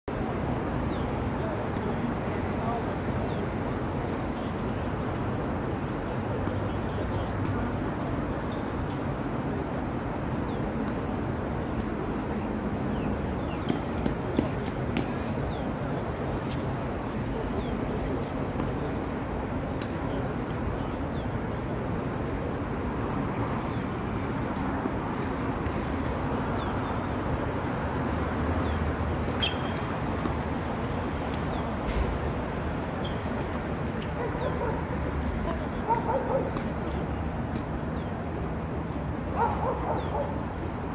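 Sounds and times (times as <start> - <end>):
steady traffic noise: 0.1 - 40.9.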